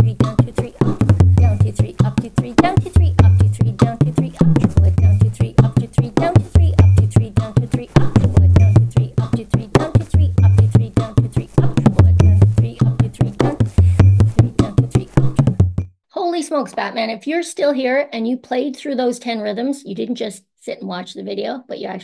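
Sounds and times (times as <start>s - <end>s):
deep resonant drum bass notes: 0.0s - 15.9s.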